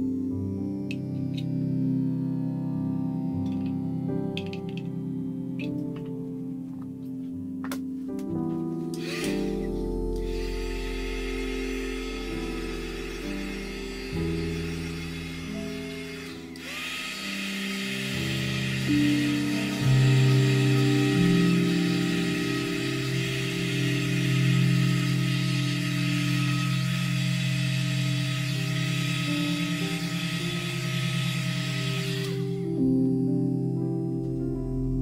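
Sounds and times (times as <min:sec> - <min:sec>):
soft ambient music: 0:00.0 - 0:35.0
heat gun hissing and whining: 0:09.0 - 0:32.8.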